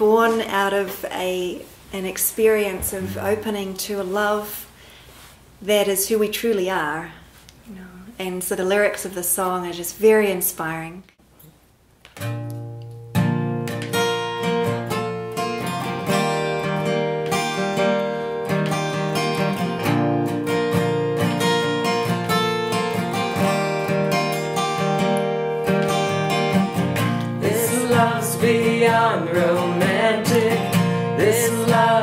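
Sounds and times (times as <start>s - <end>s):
acoustic guitar strumming: 12.2s - 32.0s.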